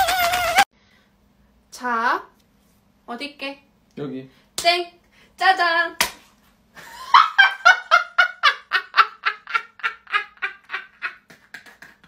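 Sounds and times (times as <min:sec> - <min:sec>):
woman laughing hard: 0:06.8 - 0:11.2.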